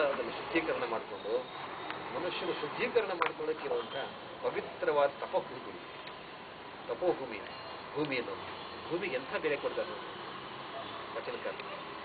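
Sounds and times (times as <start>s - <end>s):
steady background hiss: 0.0s - 12.0s
man speaking: 2.1s - 5.9s.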